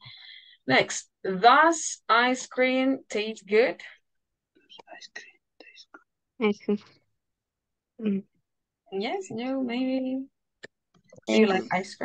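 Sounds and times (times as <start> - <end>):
soft whispered talk: 4.6 - 6.9.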